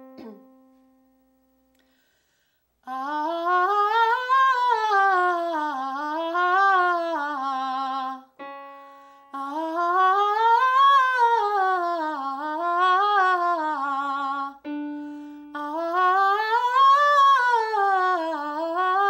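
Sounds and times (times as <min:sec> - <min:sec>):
woman singing vocal scales: 0:00.0 - 0:00.4, 0:02.8 - 0:19.0
keyboard note: 0:00.0 - 0:01.5.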